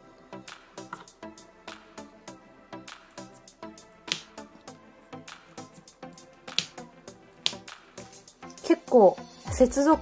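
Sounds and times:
soft plucked background music: 0.0s - 10.0s
sharp snap-like clicks: 6.5s - 6.8s, 7.4s - 7.8s.

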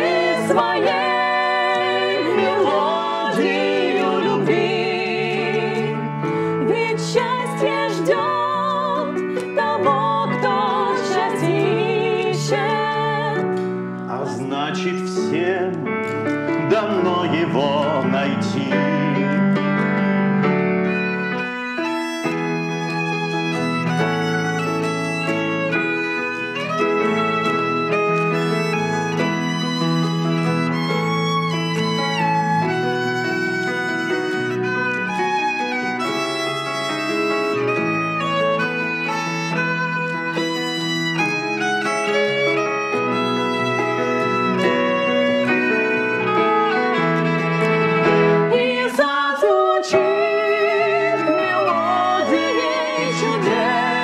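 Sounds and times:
digital piano chords: 0.0s - 54.0s
violin: 0.0s - 54.0s
woman singing with vibrato: 48.5s - 54.0s.

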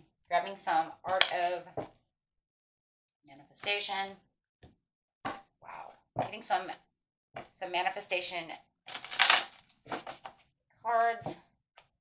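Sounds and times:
cards rustling: 8.9s - 9.7s.

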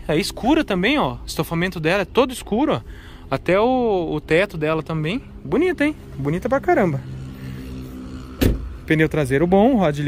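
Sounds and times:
car door shutting: 8.4s - 8.8s.

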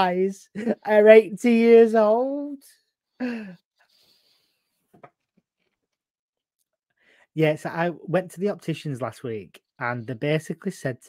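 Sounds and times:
man laughing sigh: 3.2s - 3.6s
faint breathing: 3.2s - 4.9s, 7.0s - 7.4s.

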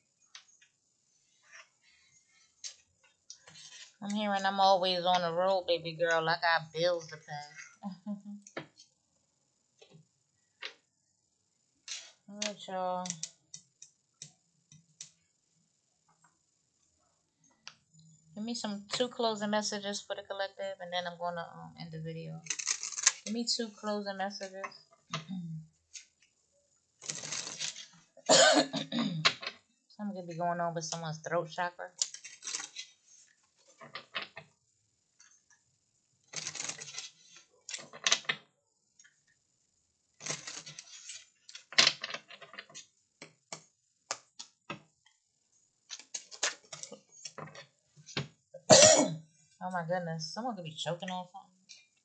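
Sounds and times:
deck of cards being shuffled: 27.0s - 27.9s, 36.3s - 38.3s, 40.2s - 42.8s
person coughing: 28.3s - 29.3s, 48.7s - 49.2s.

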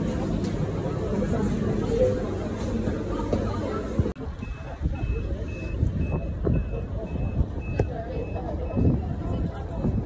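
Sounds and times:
reversing alarm beeping: 4.3s - 9.0s.

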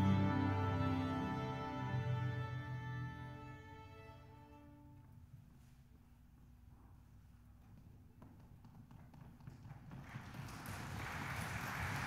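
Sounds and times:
audience applause: 9.9s - 12.0s.

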